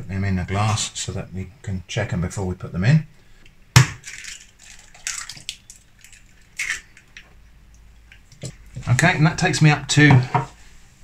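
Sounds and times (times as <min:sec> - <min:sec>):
liquid splashing and sloshing: 0:03.8 - 0:08.8.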